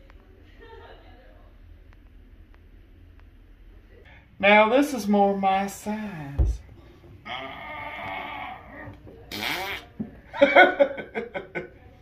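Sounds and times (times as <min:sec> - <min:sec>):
person holding wordless vocal sound: 0:07.2 - 0:08.8.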